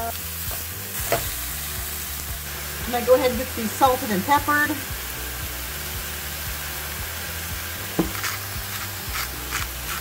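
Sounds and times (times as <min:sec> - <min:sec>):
burger patties sizzling: 0:00.0 - 0:10.0.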